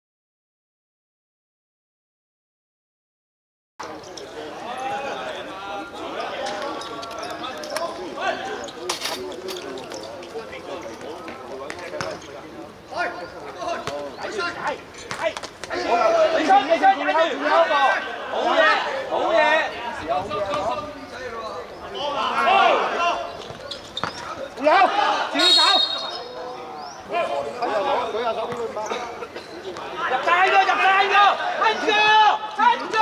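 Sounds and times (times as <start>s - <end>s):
men shouting and talking: 3.8s - 33.0s.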